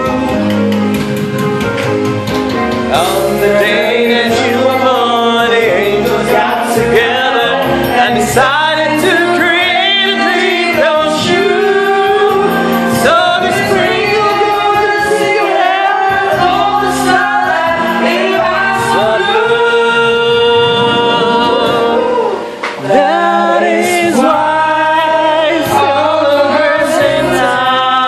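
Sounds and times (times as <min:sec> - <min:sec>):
karaoke backing track: 0:00.0 - 0:28.0
person singing into microphone: 0:02.8 - 0:28.0.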